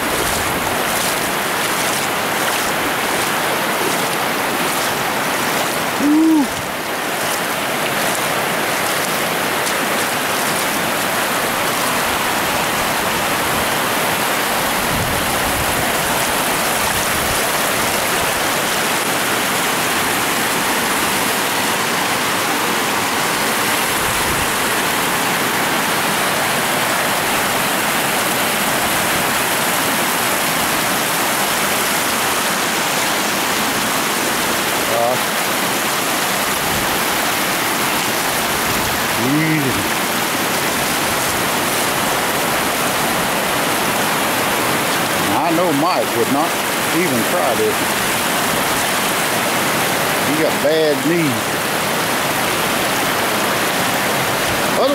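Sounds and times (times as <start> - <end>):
water rushing over bedrock: 0.0 - 54.9.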